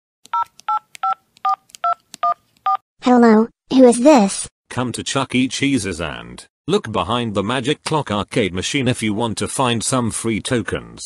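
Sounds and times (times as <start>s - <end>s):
keypad dialing beeps: 0.3s - 2.8s.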